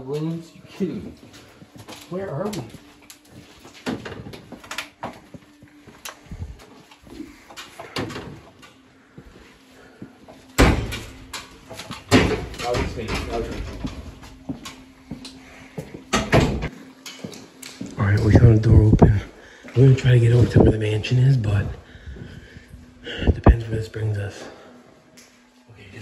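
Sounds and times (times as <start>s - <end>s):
footsteps in hallway: 0.0s - 20.8s.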